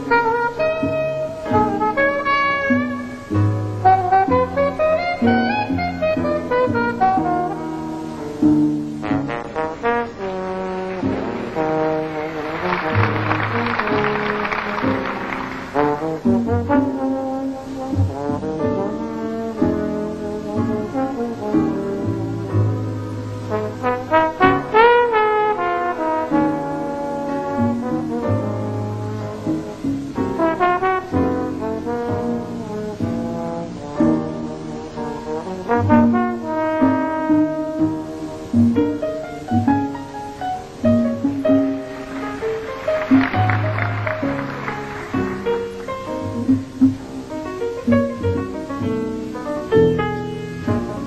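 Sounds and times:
slide trombone held notes: 0:00.0 - 0:08.2, 0:09.0 - 0:38.4
jazz band playing: 0:00.0 - 0:51.0.

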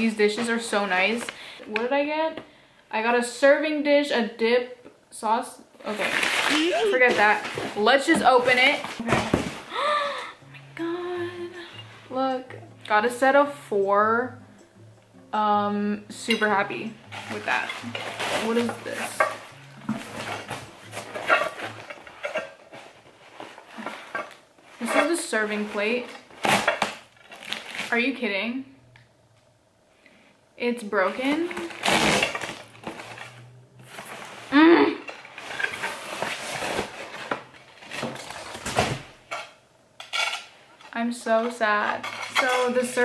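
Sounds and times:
cardboard box rustling and scraping: 0:05.9 - 0:09.7
ceramic dishes clinking and scraping: 0:41.8 - 0:43.0.

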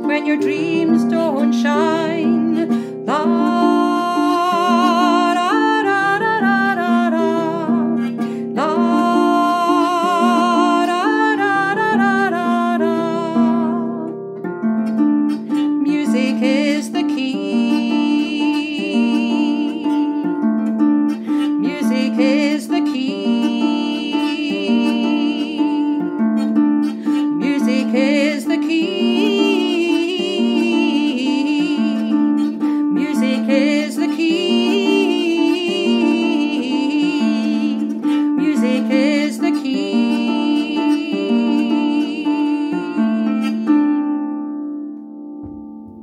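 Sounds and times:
woman singing with vibrato: 0:00.0 - 0:14.2, 0:15.3 - 0:20.4, 0:21.2 - 0:44.2
harp plucked notes: 0:00.0 - 0:46.0.

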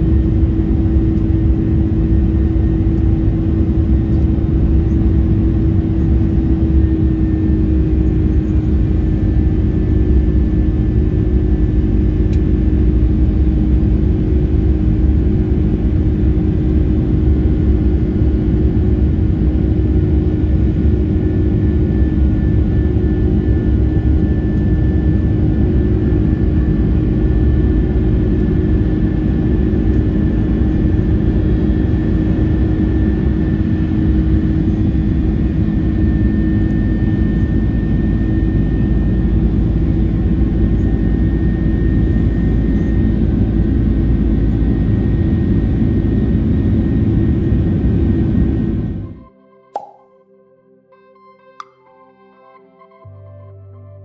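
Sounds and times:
airplane cabin engine roar: 0:00.0 - 0:49.8.

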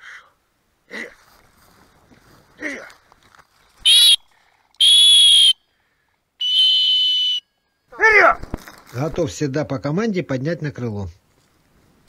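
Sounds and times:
dog whistle blasts: 0:03.9 - 0:04.2, 0:04.8 - 0:05.6, 0:06.4 - 0:07.5.

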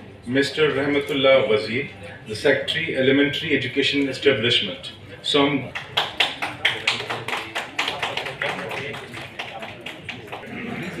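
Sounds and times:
people clapping: 0:05.6 - 0:11.0.

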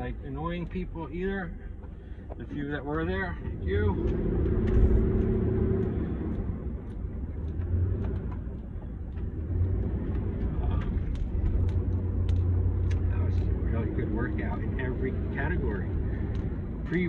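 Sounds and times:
car cabin rumble: 0:00.0 - 0:17.0.

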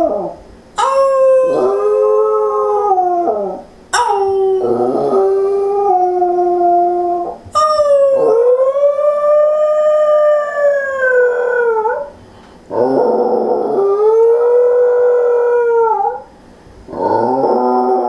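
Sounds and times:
dog howling: 0:00.0 - 0:12.1, 0:12.7 - 0:16.3, 0:16.9 - 0:18.0.

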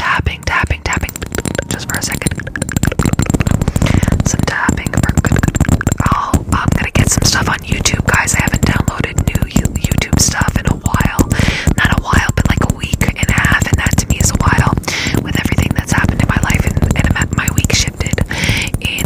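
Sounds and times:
quick tapping: 0:00.0 - 0:19.0.

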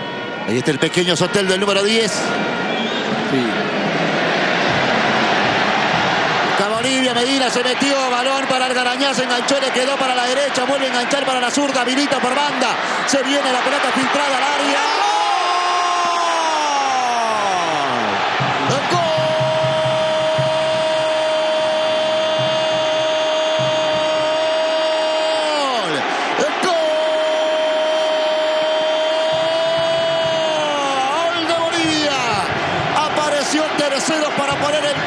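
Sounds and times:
stadium crowd noise: 0:00.0 - 0:35.0.

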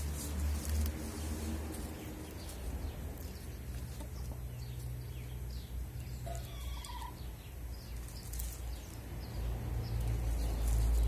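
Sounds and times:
hens chirping: 0:00.7 - 0:10.9.

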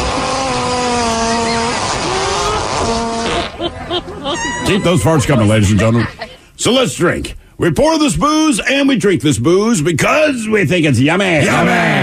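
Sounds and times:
fart sounds: 0:00.0 - 0:03.7.

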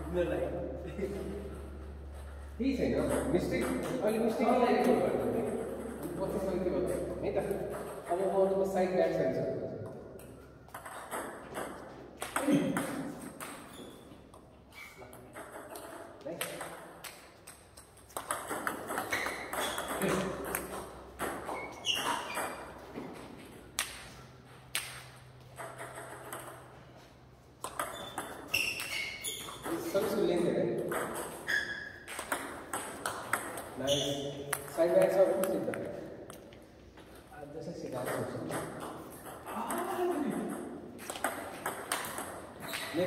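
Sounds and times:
table tennis ball clicking: 0:30.8 - 0:33.8, 0:38.0 - 0:43.0.

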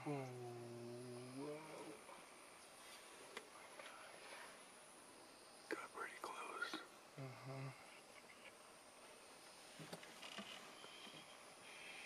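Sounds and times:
faint high hiss: 0:00.0 - 0:12.0
person whispering: 0:05.7 - 0:07.9.

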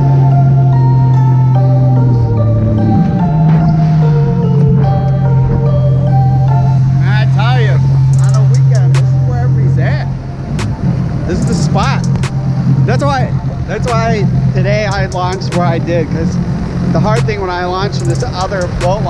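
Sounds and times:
jet ski engine drone: 0:00.0 - 0:19.0
mallet percussion music: 0:00.0 - 0:19.0
person speaking: 0:07.0 - 0:10.1, 0:11.3 - 0:16.2, 0:17.0 - 0:19.0.

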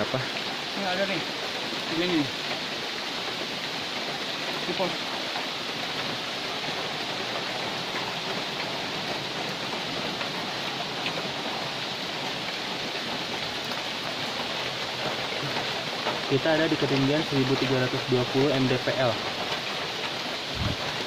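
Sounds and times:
steady rain in forest: 0:00.0 - 0:21.0.

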